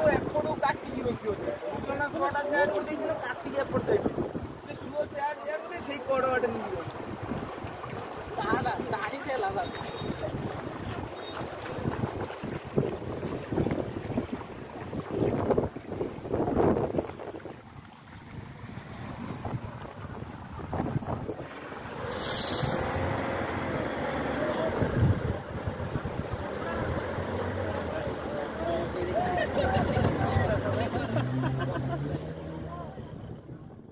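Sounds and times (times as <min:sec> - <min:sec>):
floodwater rushing: 0:00.0 - 0:33.4
high falling whistle: 0:21.3 - 0:23.2.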